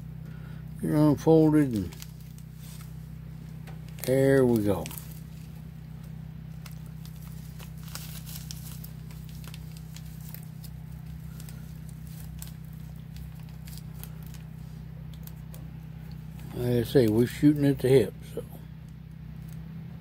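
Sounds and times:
plastic bag crinkling: 1.4s - 17.4s.

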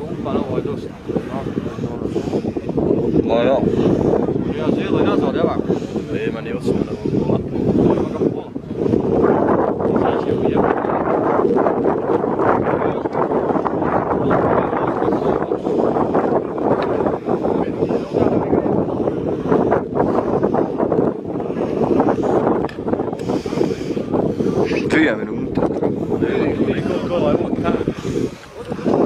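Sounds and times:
outdoor crowd voices: 0.0s - 29.0s
wind buffeting microphone: 0.0s - 29.0s.

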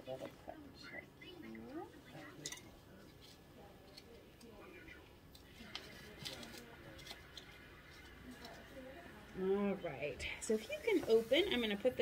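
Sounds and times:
faint low speech: 0.0s - 10.4s.

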